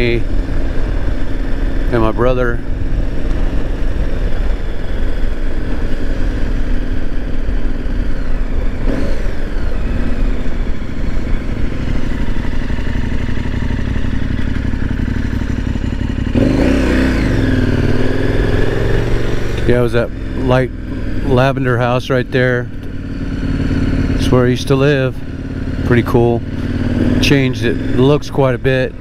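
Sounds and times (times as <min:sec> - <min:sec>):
motorcycle engine accelerating: 0:00.0 - 0:29.0.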